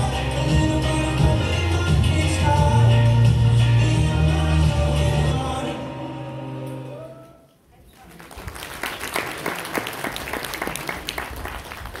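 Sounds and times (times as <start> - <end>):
song music: 0.0 - 7.5
audience applauding: 8.0 - 12.0.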